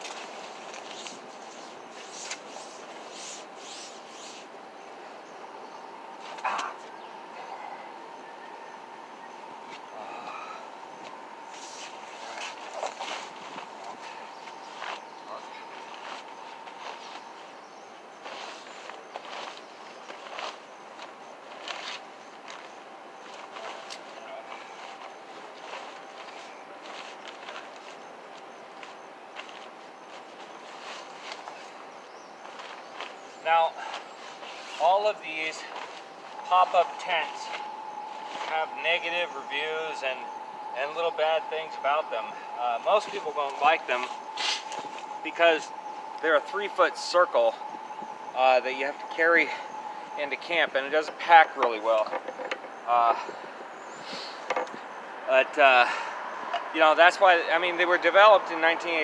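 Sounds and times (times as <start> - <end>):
tent fabric rustling and scraping: 0.0 - 4.5, 11.5 - 33.3, 33.9 - 39.7, 42.9 - 45.6
faint steady hum: 0.0 - 59.0.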